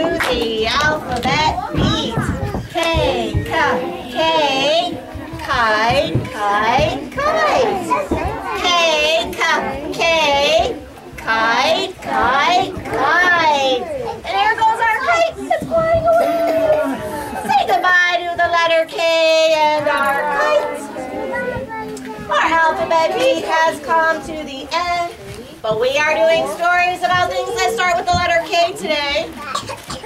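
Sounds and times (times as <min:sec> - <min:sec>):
children and woman chanting: 0:00.0 - 0:29.4.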